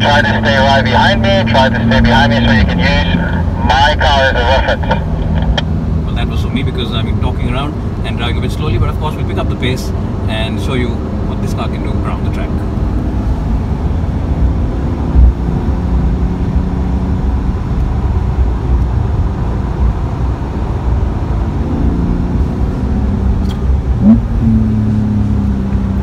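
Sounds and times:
car engine revving in cabin: 0.0s - 26.0s
road and tyre rumble: 0.0s - 26.0s.

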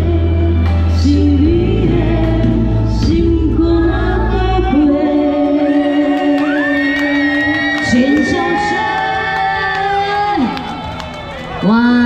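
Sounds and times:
woman singing live: 0.0s - 10.6s
amplified backing track: 0.0s - 12.0s.

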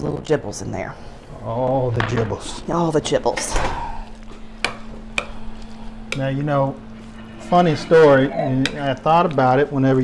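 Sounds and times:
steady low hum: 0.3s - 10.0s.

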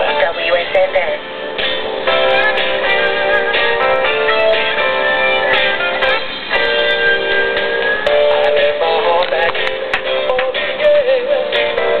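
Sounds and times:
song playing on radio: 0.0s - 12.0s.

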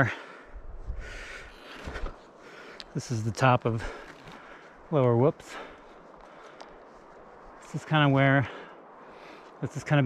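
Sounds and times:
wind rumble on microphone: 0.0s - 2.3s.

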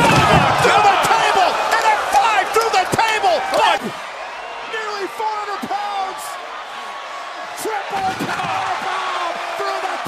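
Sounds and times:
loud arena crowd: 0.0s - 10.0s.

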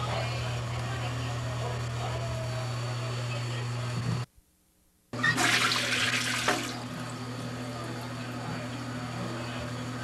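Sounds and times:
toilet flushing: 5.2s - 7.0s.

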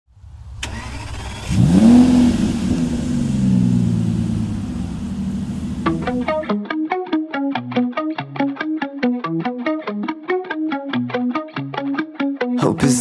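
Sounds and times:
car engine starting and idling: 0.2s - 6.4s.

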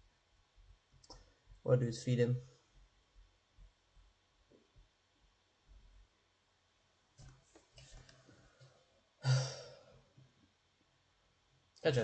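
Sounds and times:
man sighing: 9.2s - 9.9s.

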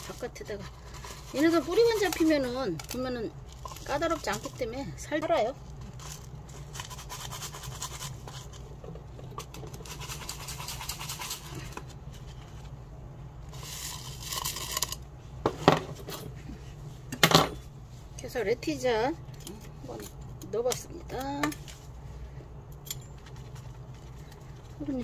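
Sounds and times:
hands scratching potting soil: 0.0s - 4.7s.

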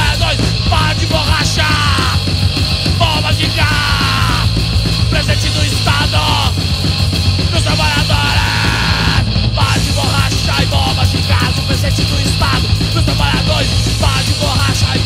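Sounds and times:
bass guitar: 0.0s - 15.0s
drum kit: 0.0s - 15.0s
yelled vocals: 0.0s - 15.0s.

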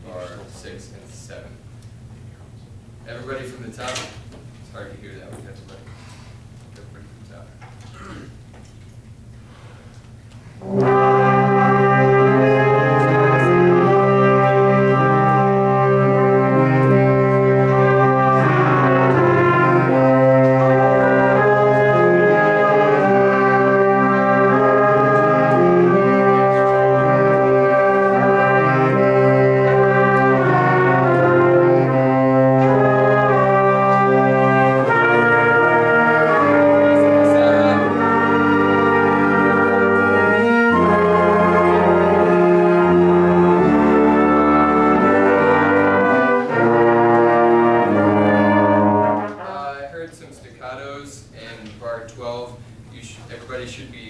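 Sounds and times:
wind ensemble playing sustained chords: 10.5s - 50.3s.

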